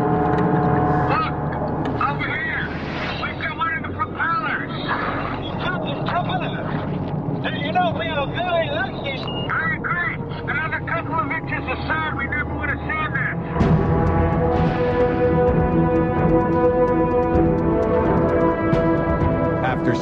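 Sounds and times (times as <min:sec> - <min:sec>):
sustained music: 0:00.0 - 0:20.0.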